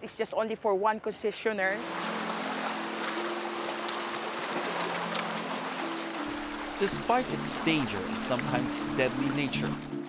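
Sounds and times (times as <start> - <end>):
music of slow held chords: 1.8 - 10.0.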